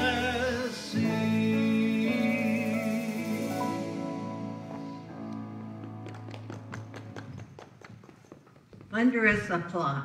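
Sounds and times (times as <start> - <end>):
scattered hand claps: 5.8 - 8.6.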